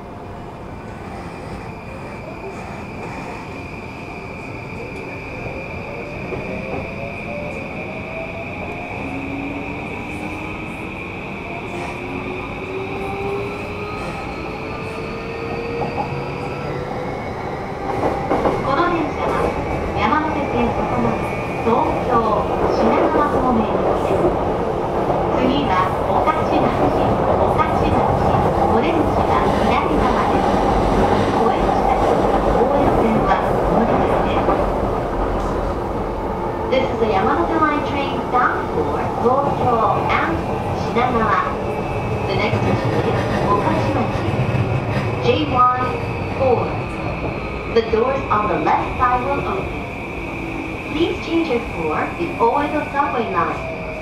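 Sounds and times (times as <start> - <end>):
train wheels on rail: 0.0 - 54.0
traction motors whining: 0.8 - 5.1.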